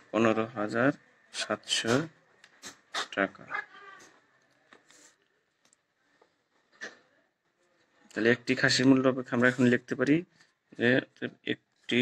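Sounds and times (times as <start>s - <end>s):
man speaking in fragments: 0.1s - 2.2s, 8.1s - 12.0s.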